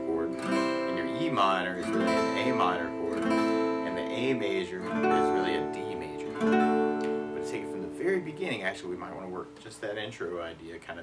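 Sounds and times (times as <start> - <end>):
acoustic guitar chord strummed: 0.0 - 9.4.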